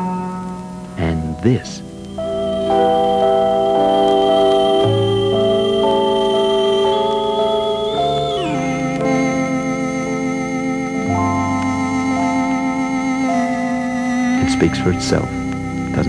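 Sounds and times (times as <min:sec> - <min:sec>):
electronic organ-like notes: 0:00.0 - 0:16.0.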